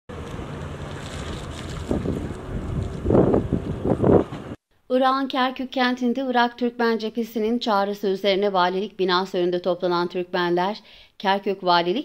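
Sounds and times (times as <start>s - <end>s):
low rumble of vehicles: 0.1s - 4.6s
wind buffeting microphone: 0.4s - 4.6s.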